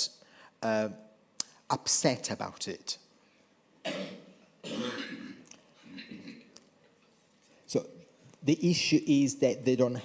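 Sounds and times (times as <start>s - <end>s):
person clearing throat: 3.8s - 6.6s.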